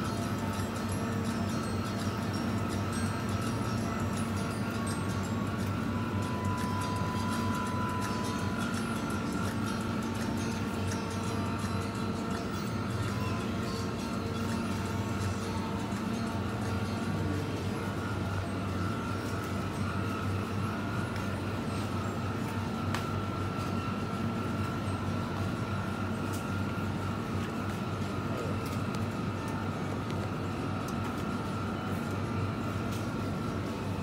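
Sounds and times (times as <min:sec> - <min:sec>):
refrigerated display cases humming: 0:00.0 - 0:34.0.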